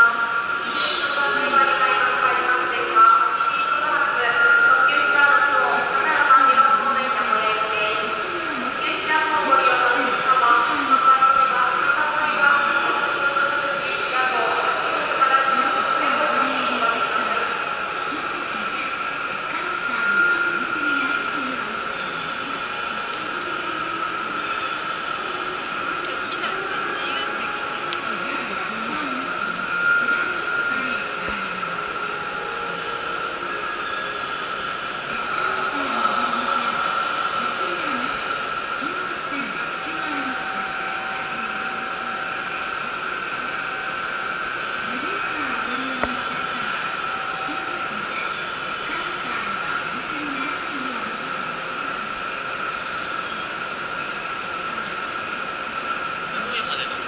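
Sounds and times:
passengers passing: 0:00.0 - 0:57.0
people's voices: 0:00.0 - 0:57.0
steady high whine: 0:00.0 - 0:57.0.

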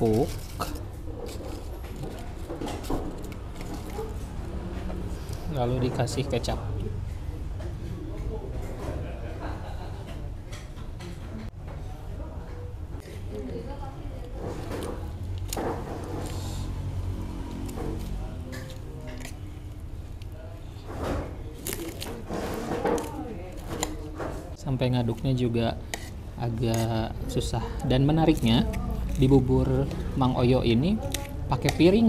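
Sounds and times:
spoon stirring thick porridge: 0:25.0 - 0:29.9.

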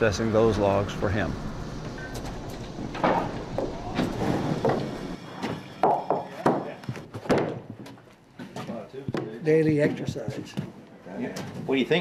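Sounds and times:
low engine hum: 0:00.0 - 0:05.2
wooden boards knocking and clattering: 0:03.0 - 0:09.3.

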